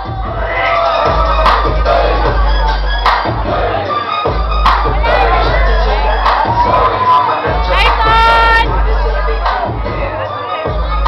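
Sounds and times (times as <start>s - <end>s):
crowd cheering and shouting: 0.0s - 11.0s
hip-hop music with heavy bass: 0.0s - 11.0s.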